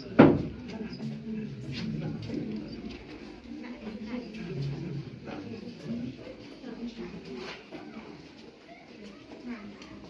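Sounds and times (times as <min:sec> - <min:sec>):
people talking quietly: 0:00.0 - 0:10.0.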